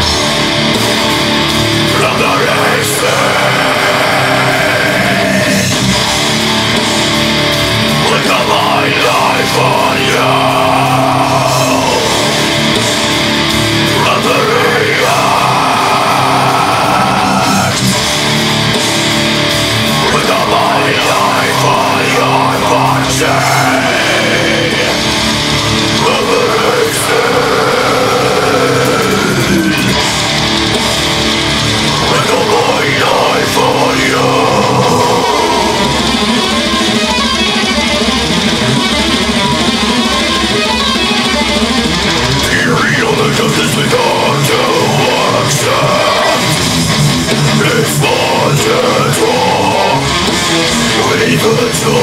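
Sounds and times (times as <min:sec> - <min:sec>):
heavy metal backing track: 0:00.0 - 0:52.0
guttural scream vocal: 0:01.8 - 0:06.2, 0:07.9 - 0:12.8, 0:13.7 - 0:18.6, 0:19.8 - 0:37.0, 0:42.4 - 0:52.0.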